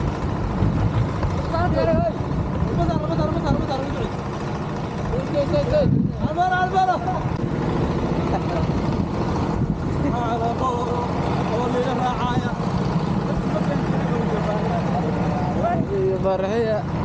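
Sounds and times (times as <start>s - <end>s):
vehicle engine running: 0.0s - 17.0s.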